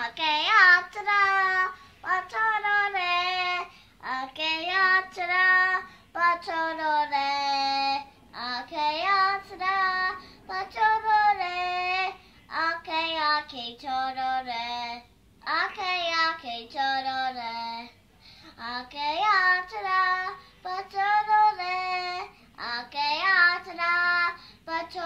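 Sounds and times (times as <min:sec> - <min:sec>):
boy singing unaccompanied: 0:00.0 - 0:25.0.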